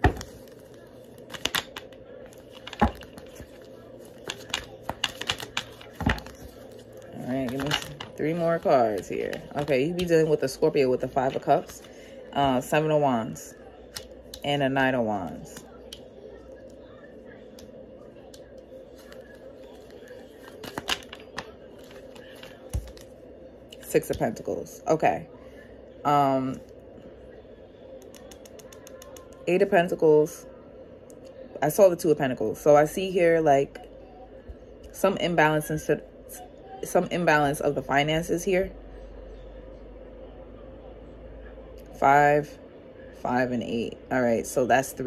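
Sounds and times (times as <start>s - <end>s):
faint hum: 0.0s - 45.0s
cards being shuffled: 1.2s - 10.0s, 19.0s - 23.1s.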